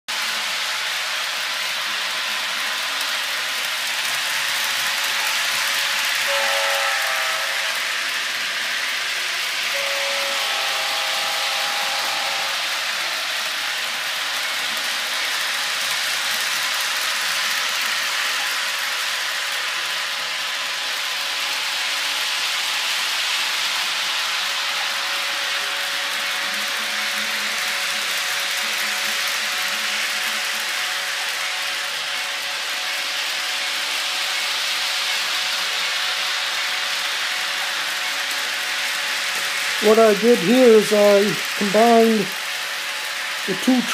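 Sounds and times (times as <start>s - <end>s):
model train running: 0.1s - 43.9s.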